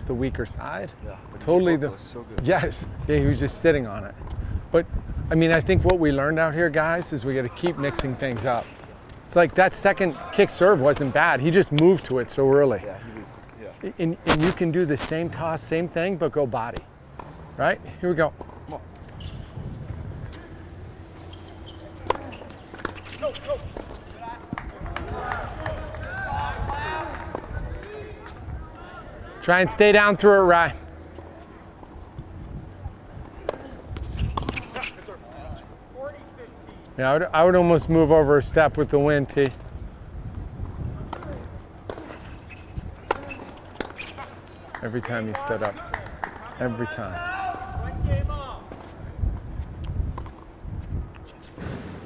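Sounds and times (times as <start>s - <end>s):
wind rumble on microphone: 2.7s - 6.2s, 19.1s - 20.8s, 39.6s - 41.7s, 47.7s - 52.0s.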